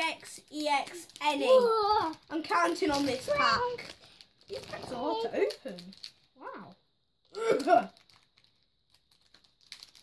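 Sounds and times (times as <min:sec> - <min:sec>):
plastic wrapper crinkling: 0:00.0 - 0:10.0.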